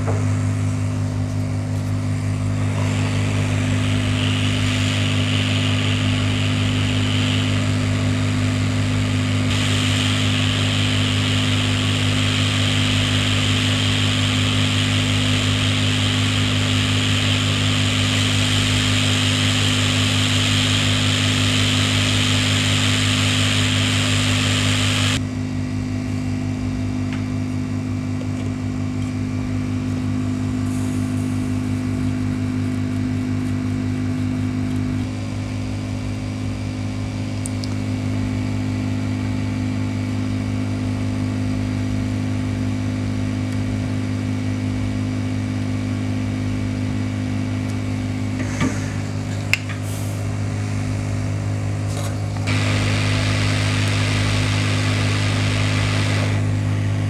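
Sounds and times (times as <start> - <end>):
hot air station hissing: 2.2 - 25.2, 30.5 - 32.6, 48.3 - 57.0.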